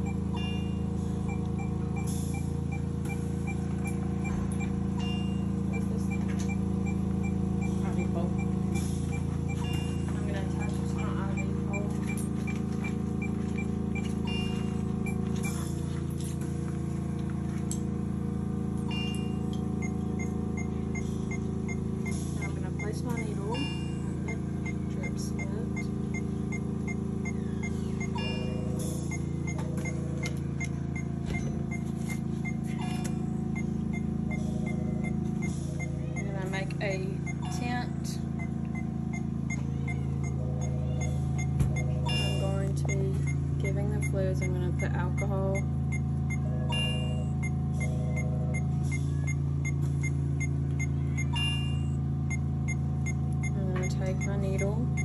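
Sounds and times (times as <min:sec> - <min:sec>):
fast high-pitched beeps: 0:00.0 - 0:15.7, 0:18.9 - 0:30.0, 0:33.5 - 0:55.0
steady low hum: 0:00.0 - 0:55.0.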